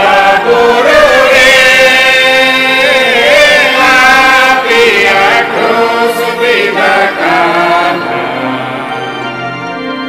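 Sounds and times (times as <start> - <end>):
person singing a hymn: 0.0 - 10.0.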